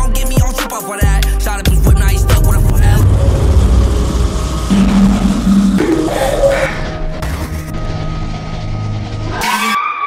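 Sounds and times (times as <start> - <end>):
sudden burst: 1.9 - 8.4
low steady drone: 1.9 - 9.4
squealing tone: 3.0 - 10.0.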